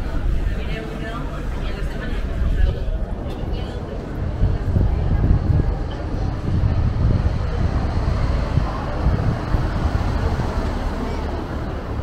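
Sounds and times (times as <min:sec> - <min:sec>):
distant traffic rumble: 0:00.0 - 0:12.0
passers-by talking: 0:00.0 - 0:12.0.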